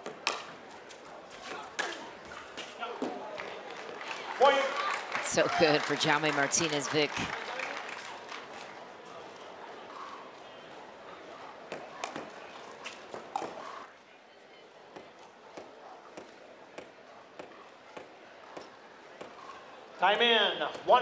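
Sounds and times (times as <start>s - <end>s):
murmur of crowd: 0.0s - 21.0s
ball bouncing on hard court: 11.7s - 12.3s.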